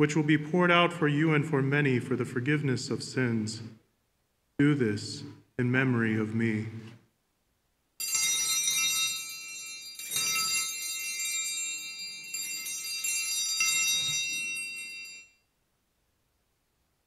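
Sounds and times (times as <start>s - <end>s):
altar bells ringing: 8.0s - 15.5s.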